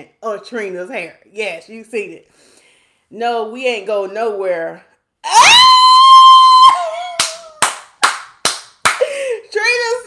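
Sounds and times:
woman squealing: 5.2 - 7.6.

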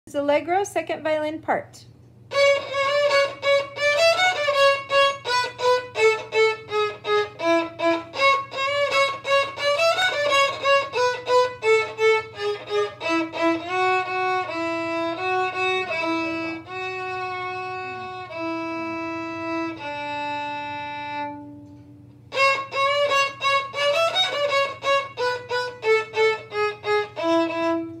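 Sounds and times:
solo violin playing: 2.3 - 28.0.

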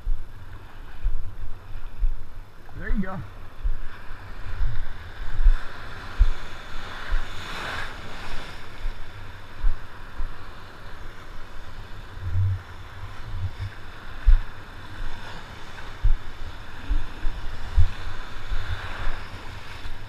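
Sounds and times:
surf washing in shallow water: 0.0 - 20.0
wind buffeting microphone: 0.0 - 20.0.

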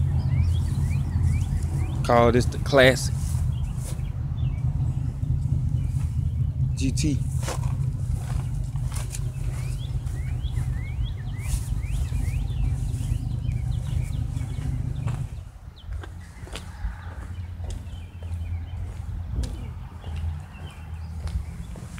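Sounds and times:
low rumble: 0.0 - 21.8
birds chirping: 0.0 - 21.9.

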